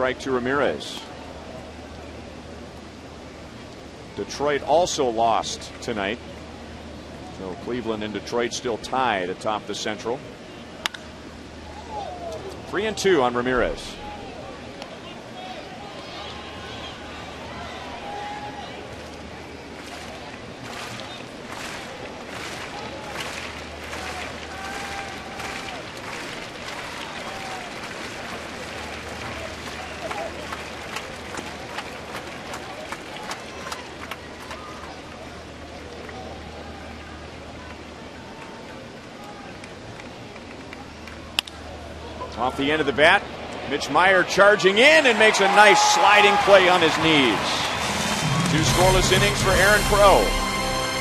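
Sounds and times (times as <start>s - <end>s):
crowd chatter: 10.2s - 51.0s
crowd shouts: 13.9s - 18.9s, 22.7s - 27.8s, 42.4s - 51.0s
clapping: 19.8s - 35.0s.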